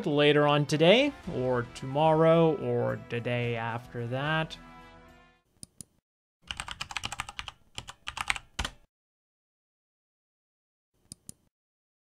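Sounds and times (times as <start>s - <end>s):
typing on computer keyboard: 6.5s - 8.9s.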